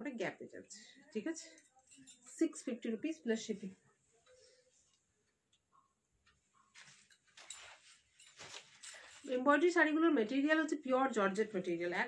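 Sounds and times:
cloth rustling: 6.2 - 9.7.

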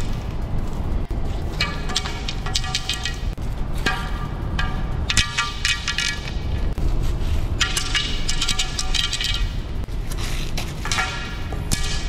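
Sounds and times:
music with heavy bass: 0.0 - 12.0.

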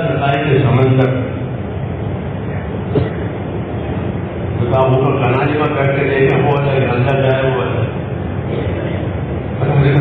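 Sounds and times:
steady rumbling noise: 0.0 - 10.0.

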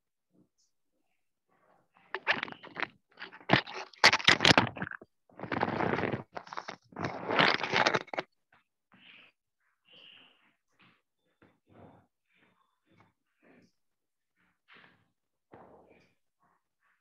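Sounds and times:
scraping and rustling on microphone: 2.1 - 8.3.

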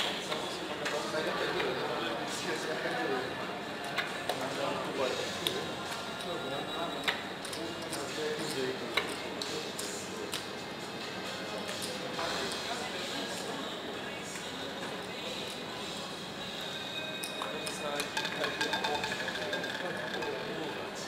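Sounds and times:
hubbub of voices: 0.0 - 21.0.

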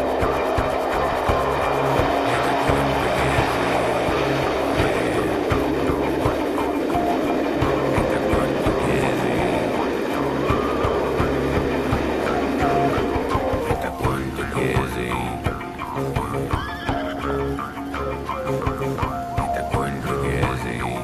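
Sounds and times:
diesel locomotive engine droning: 0.0 - 21.0.

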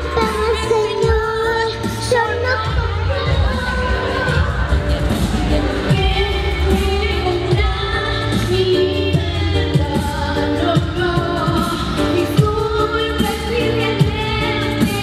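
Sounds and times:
loud amplified music with beat: 0.0 - 15.0
woman singing into microphone: 0.0 - 15.0.

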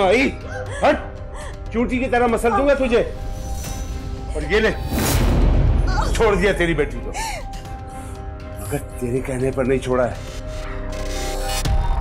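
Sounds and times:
dramatic background music: 0.0 - 12.0
woman crying out in pain: 0.4 - 1.7.

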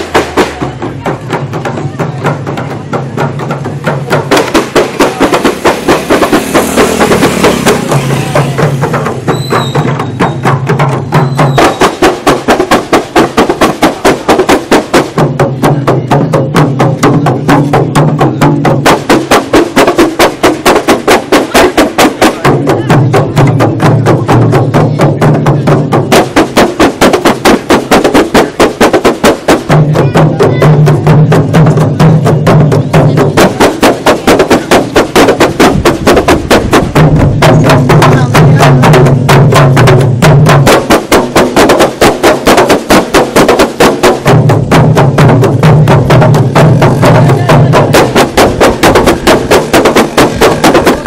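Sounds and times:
frame drums slapping: 0.0 - 51.0.

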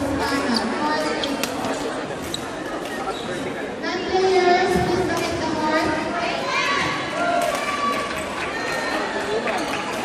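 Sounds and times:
crowd chatter in sports hall: 0.0 - 10.0.

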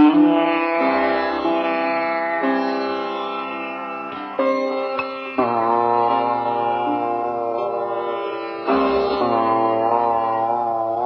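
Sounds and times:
low steady drone: 0.0 - 11.0
sitar note plucked: 0.0 - 11.0.

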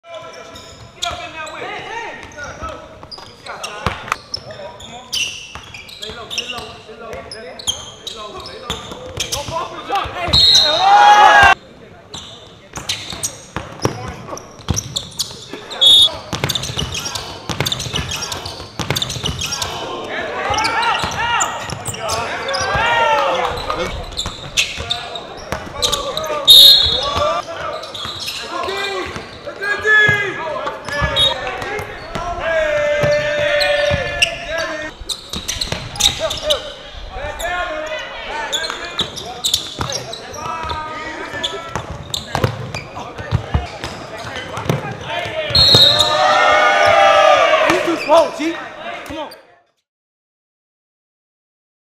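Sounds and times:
shoe squeaks: 0.1 - 10.9, 12.1 - 19.8, 20.4 - 22.8, 23.4 - 29.6, 33.1 - 36.8, 37.4 - 44.4, 45.5 - 46.2, 47.9 - 48.5
players calling and shouting: 0.1 - 49.6
basketball bouncing on hardwood: 18.8 - 19.4, 41.7 - 44.0.

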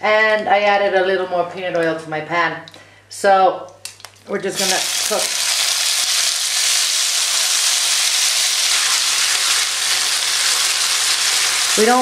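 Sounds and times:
steak sizzling in hot oil: 4.6 - 12.0.

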